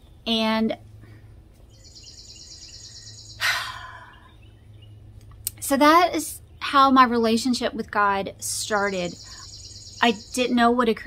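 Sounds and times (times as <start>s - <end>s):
steady low hum: 0.0s - 11.0s
bird trilling: 1.7s - 4.9s, 8.7s - 10.6s.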